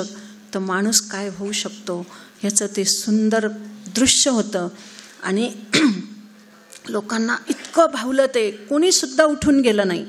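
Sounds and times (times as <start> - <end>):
woman speaking into a microphone: 0.0 - 6.2, 6.8 - 10.0.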